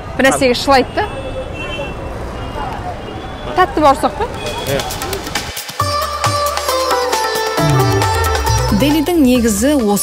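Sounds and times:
traffic: 0.0 - 5.8.

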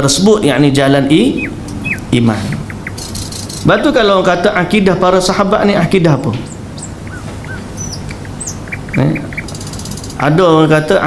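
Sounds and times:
steady low hum: 0.0 - 11.0
small birds chirping: 1.0 - 4.2, 5.6 - 11.0.

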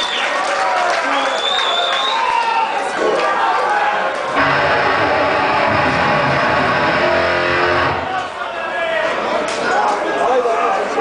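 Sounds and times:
distorted guitars and bass chord: 4.4 - 8.2.

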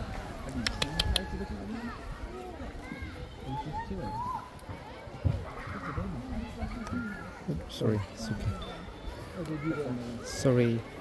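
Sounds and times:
people talking: 0.5 - 4.1.

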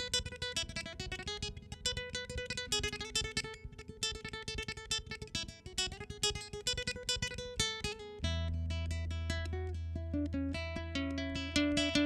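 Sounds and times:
classical guitar fingerstyle: 0.0 - 12.0.

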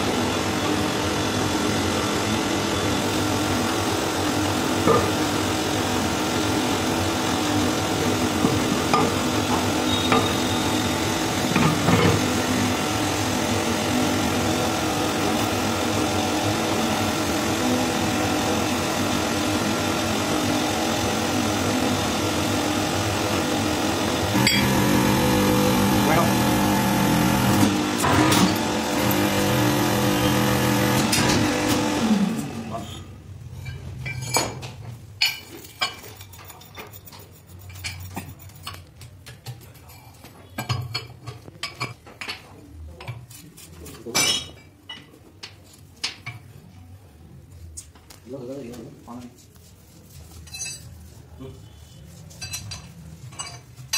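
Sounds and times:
hydraulic press motor humming: 23.8 - 32.7.

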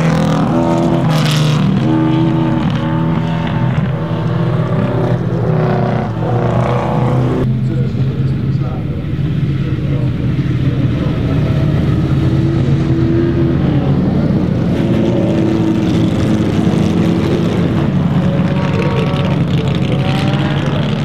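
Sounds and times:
race car engines: 0.0 - 21.0.

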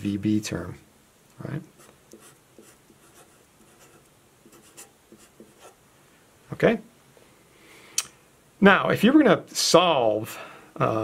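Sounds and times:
marker strokes on paper: 1.8 - 5.8.

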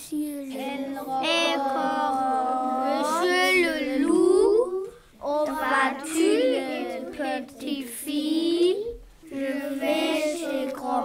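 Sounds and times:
young voices singing: 0.0 - 11.0.

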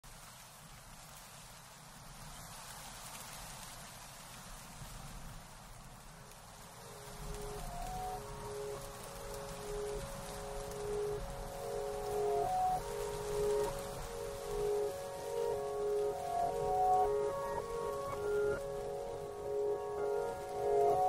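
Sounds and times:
faint steady hiss: 0.0 - 21.0
slow melody of held notes: 6.5 - 21.0.

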